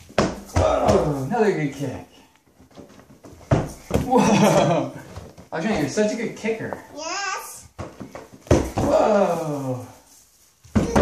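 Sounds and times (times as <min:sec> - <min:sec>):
beach ball thump: 0:03.5 - 0:04.2, 0:07.8 - 0:09.0.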